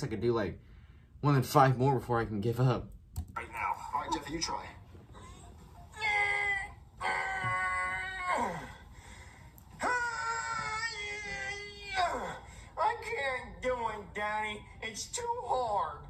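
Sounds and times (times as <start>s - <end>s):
man groaning in high voice: 6.0s - 8.8s, 9.8s - 13.1s.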